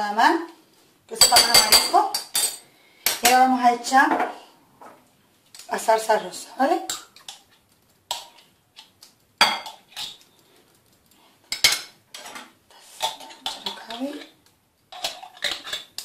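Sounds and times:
utensils clinking on glass bowl: 0:01.2 - 0:02.6.

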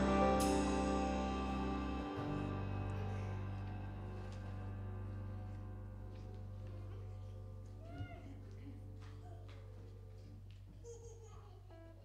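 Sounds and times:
low steady hum: 0:00.0 - 0:10.8.

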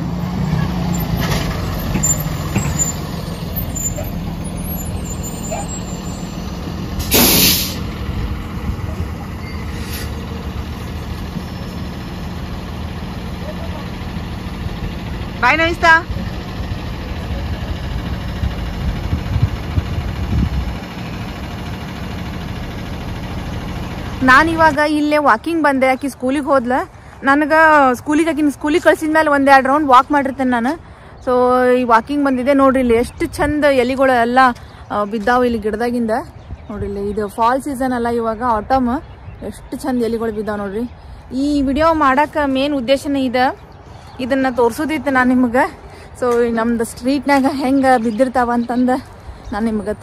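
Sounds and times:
bus engine idling: 0:00.0 - 0:50.0
compressed air hiss: 0:07.0 - 0:07.9.

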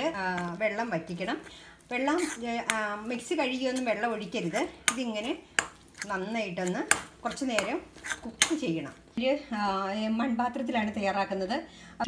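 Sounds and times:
metal spatula scraping a pan: 0:00.0 - 0:08.9.

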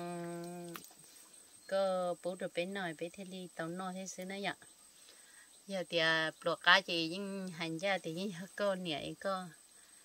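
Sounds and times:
woman talking: 0:00.0 - 0:00.8, 0:01.7 - 0:04.6, 0:05.7 - 0:09.6.

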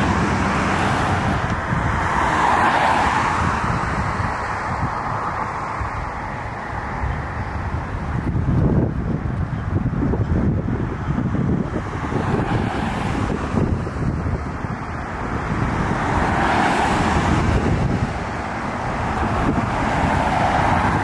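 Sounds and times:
car passing close by: 0:00.0 - 0:07.7, 0:11.5 - 0:14.2, 0:15.0 - 0:21.0
road traffic rumble: 0:00.0 - 0:21.0
wind on microphone: 0:00.0 - 0:21.0.

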